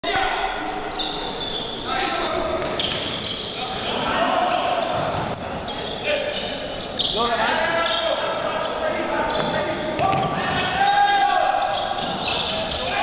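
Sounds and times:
voices of players and spectators: 0:00.0 - 0:13.0
sneakers squeaking on court: 0:00.6 - 0:10.8, 0:11.6 - 0:13.0.

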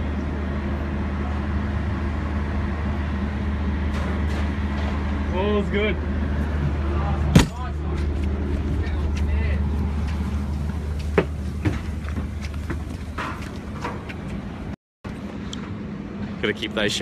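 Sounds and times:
low machine hum: 0:00.0 - 0:17.0
footsteps on metal stairs: 0:07.4 - 0:14.7.

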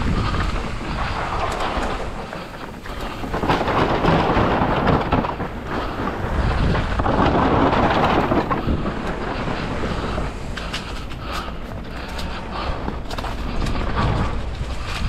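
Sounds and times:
bike tyres rattling over bamboo slats: 0:00.0 - 0:15.0.

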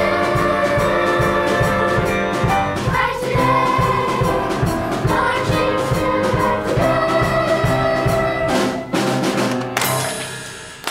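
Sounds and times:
brass band march music: 0:00.0 - 0:09.6.

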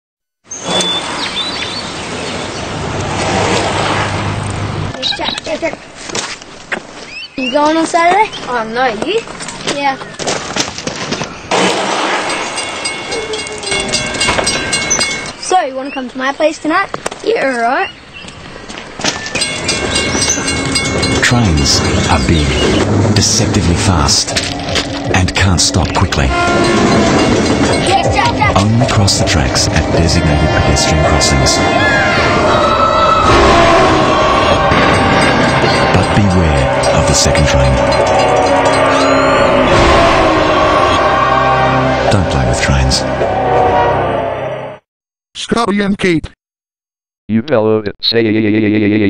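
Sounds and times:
train rushing past: 0:02.2 - 0:05.0, 0:19.3 - 0:44.8
high ringing tones: 0:11.6 - 0:16.1, 0:19.1 - 0:42.1
background music: 0:19.4 - 0:44.8.

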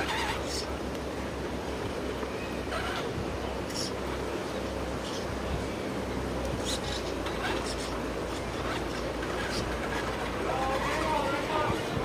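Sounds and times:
steady outdoor noise: 0:00.0 - 0:12.0
people talking indistinctly: 0:06.5 - 0:12.0.

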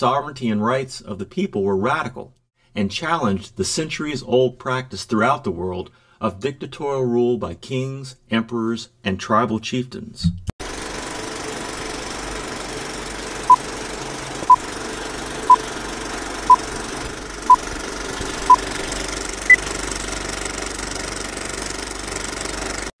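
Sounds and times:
film projector rattle and hiss: 0:10.6 - 0:22.9.

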